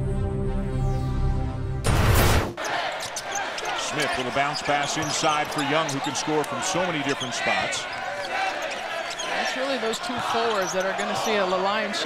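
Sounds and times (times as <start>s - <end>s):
crowd noise: 2.6s - 12.0s.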